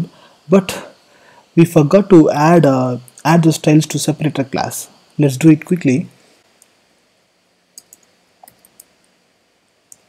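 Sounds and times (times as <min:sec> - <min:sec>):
faint computer keyboard typing: 0:07.7 - 0:09.1.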